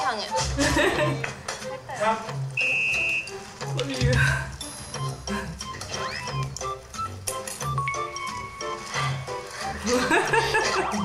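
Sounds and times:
background music: 0:00.0 - 0:11.0
high electronic beep: 0:02.6 - 0:03.4.

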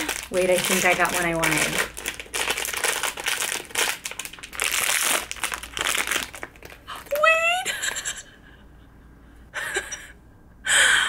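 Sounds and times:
foil wrapper crinkling: 0:00.0 - 0:07.4.

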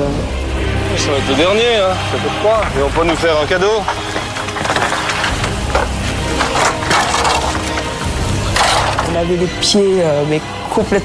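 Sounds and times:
bamboo poles knocking together: 0:03.0 - 0:09.2.

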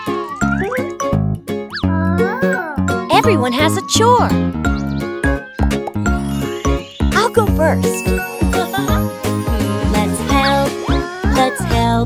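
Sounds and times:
instrumental children's song music: 0:00.0 - 0:12.0.

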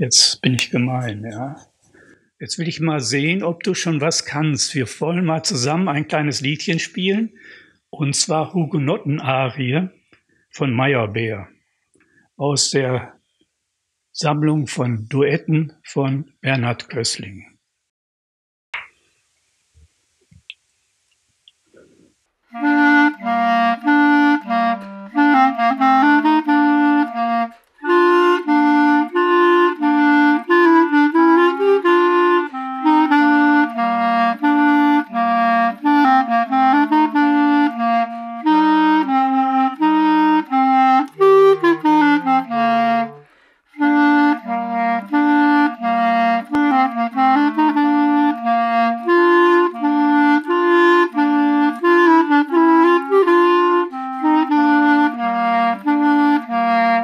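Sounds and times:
clarinet duet: 0:00.0 - 0:01.6, 0:02.4 - 0:07.4, 0:22.5 - 0:57.0.

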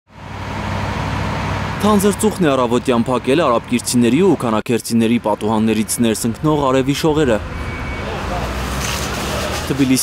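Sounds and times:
fire truck engines running: 0:00.1 - 0:10.0
outdoor noise: 0:00.1 - 0:10.0
man speaking: 0:01.8 - 0:08.6, 0:09.6 - 0:10.0.

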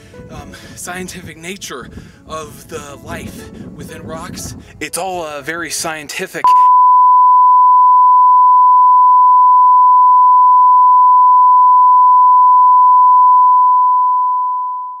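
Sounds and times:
sine-wave test tone beep: 0:06.4 - 0:15.0.

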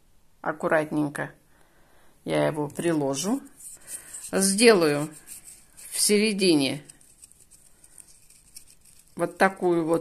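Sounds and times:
stick scraping into potting soil: 0:02.6 - 0:10.0.

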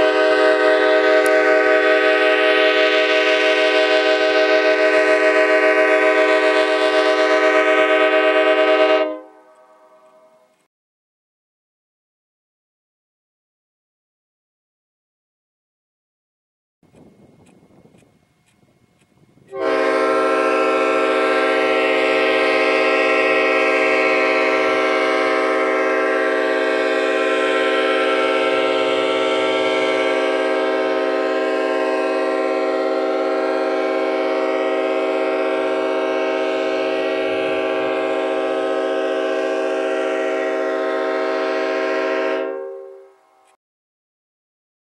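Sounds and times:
locomotive air horn chord: 0:00.0 - 0:10.6, 0:19.4 - 0:43.6.

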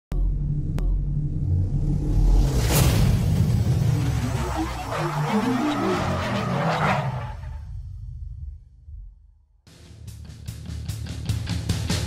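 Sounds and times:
deep steady rumble: 0:00.1 - 0:04.4.

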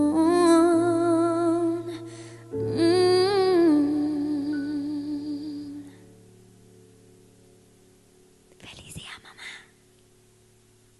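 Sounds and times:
faint steady hum: 0:00.0 - 0:10.9
woman's breathy whisper: 0:08.6 - 0:09.8.

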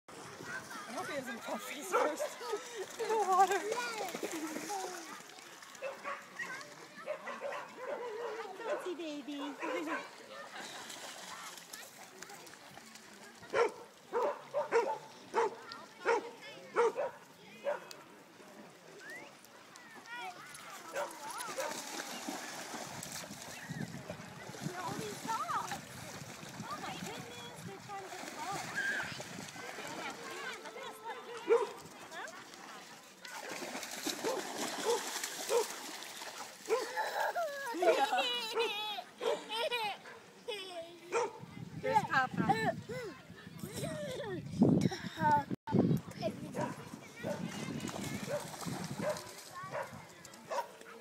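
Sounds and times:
dog splashing through water: 0:00.5 - 0:07.3, 0:09.4 - 0:15.1, 0:20.1 - 0:38.0, 0:47.2 - 0:50.9
dog barking: 0:01.9 - 0:02.3, 0:05.8 - 0:06.3, 0:07.0 - 0:08.9, 0:13.5 - 0:17.9, 0:31.5 - 0:31.8, 0:41.1 - 0:41.4, 0:49.0 - 0:50.8.

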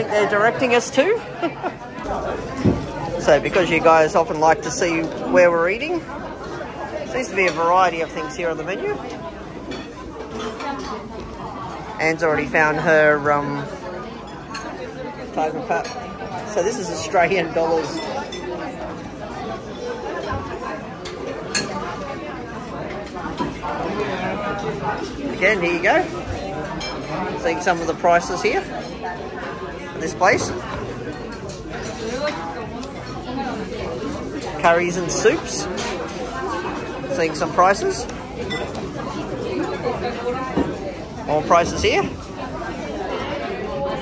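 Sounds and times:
diners chattering: 0:00.0 - 0:44.0.

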